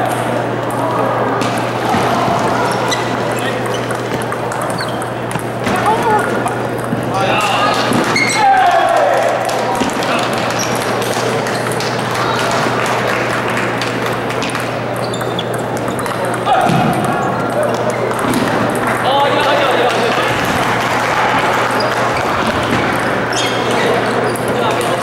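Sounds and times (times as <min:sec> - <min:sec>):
voices echoing in hall: 0:00.0 - 0:25.0
table tennis ball clicking: 0:02.9 - 0:08.2, 0:09.8 - 0:12.5, 0:13.8 - 0:20.3.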